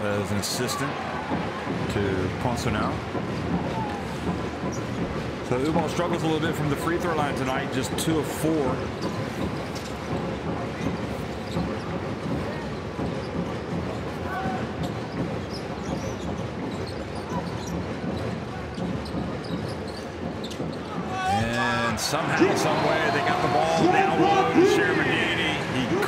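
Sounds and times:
crowd murmur: 20.8 - 26.0.

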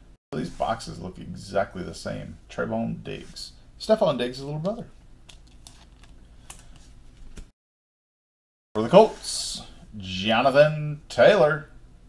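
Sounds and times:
low steady hum: 0.0 - 7.4, 8.8 - 12.0.

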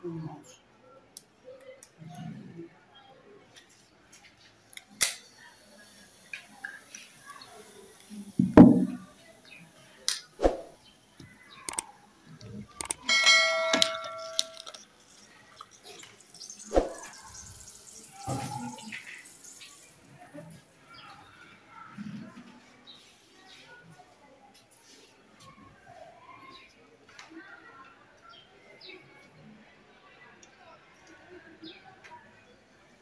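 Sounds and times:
glassware knocks and clicks: 8.4 - 9.0, 12.9 - 14.8
thump: 8.4 - 9.0
glass ringing clink: 13.0 - 15.2.

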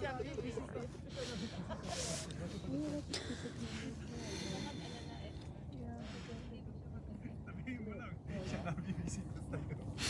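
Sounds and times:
group talking quietly: 0.0 - 10.0
people laughing: 0.9 - 3.8, 8.4 - 10.0.

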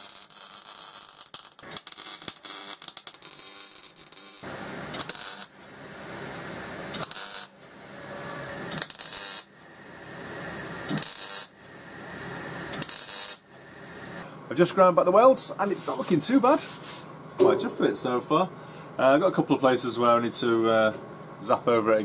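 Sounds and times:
welder arc crackling: 0.0 - 5.7, 6.9 - 7.6, 8.6 - 9.6, 10.9 - 11.6, 12.7 - 14.2.

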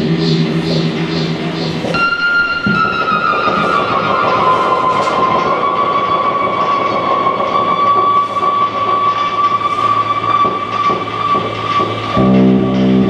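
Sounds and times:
held whistling tone: 0.0 - 12.9
thick wash of noise: 0.0 - 13.0.

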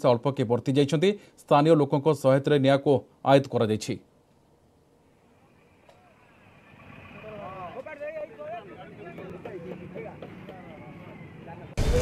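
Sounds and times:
busy street noise: 4.8 - 12.0.

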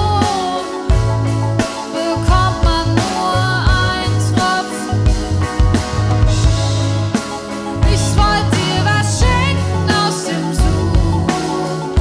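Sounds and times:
bass guitar: 0.0 - 12.0
electric guitar: 0.0 - 12.0
synthesizer keyboards: 0.0 - 12.0
pitch-bending lead line: 2.6 - 11.9.

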